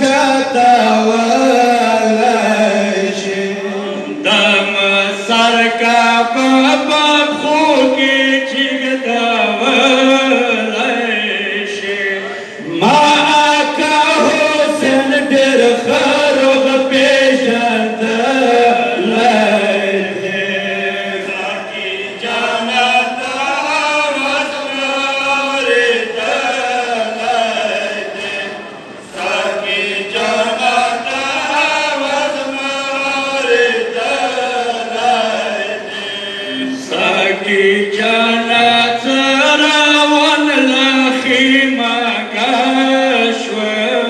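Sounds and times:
men chanting through microphones: 0:00.0 - 0:44.0.

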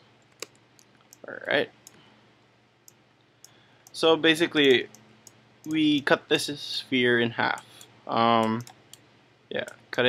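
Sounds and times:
computer mouse clicks: 0:00.2 - 0:02.0, 0:07.8 - 0:09.0.

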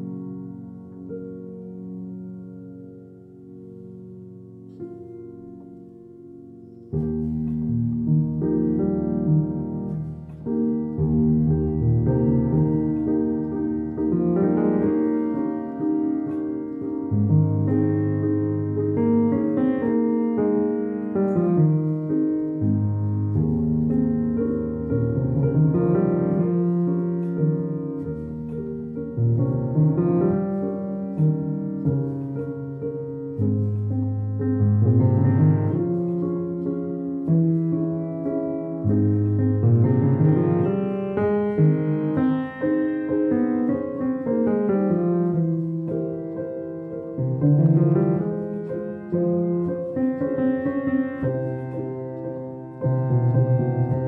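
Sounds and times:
solo piano improvisation: 0:00.0 - 0:54.0.

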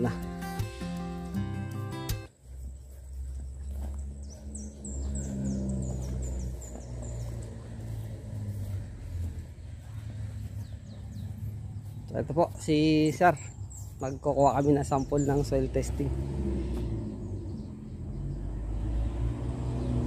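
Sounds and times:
bird chirping: 0:00.0 - 0:20.0.

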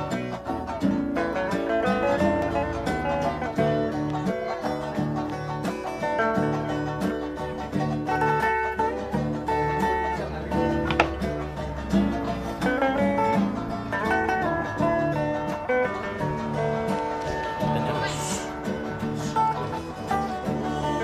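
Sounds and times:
electric and acoustic guitars: 0:00.0 - 0:21.0.

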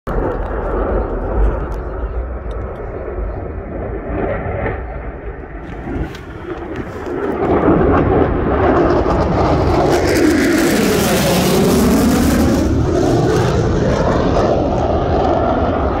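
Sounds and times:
jet flyby roar: 0:00.1 - 0:16.0.

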